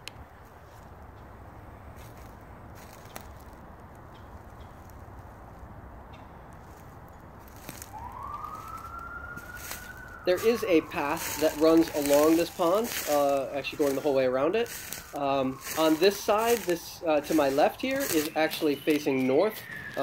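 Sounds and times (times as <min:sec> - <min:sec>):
footsteps on dry leaves: 0:00.3 - 0:20.0
emergency vehicle siren: 0:07.3 - 0:20.0.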